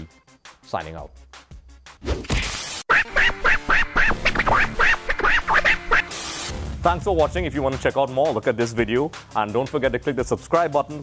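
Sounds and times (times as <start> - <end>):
music: 0.0 - 11.0
nasal quack-like calls: 2.9 - 6.2.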